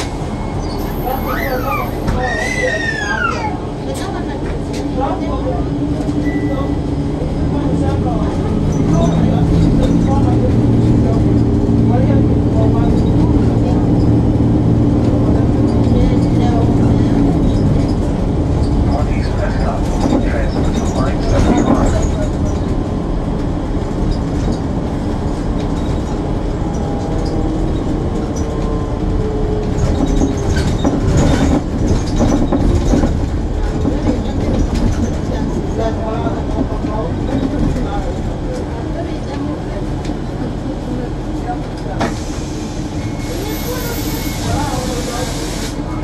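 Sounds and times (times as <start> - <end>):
transit vehicle interior rumble: 0.0 - 46.0
knocks and rattles: 29.6 - 35.4.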